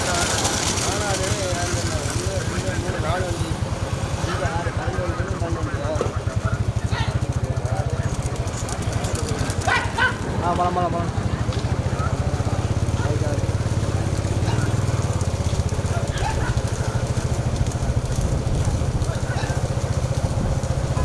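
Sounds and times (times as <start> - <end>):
motorcycle engine running: 0.0 - 21.0
people shouting: 6.8 - 7.2, 9.5 - 10.4, 11.9 - 17.4, 19.0 - 19.9.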